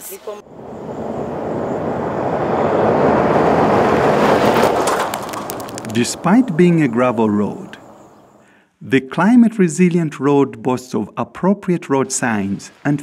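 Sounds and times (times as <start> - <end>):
vehicle tyres on gravel road: 0.5 - 8.4
scattered clicks: 4.8 - 6.2.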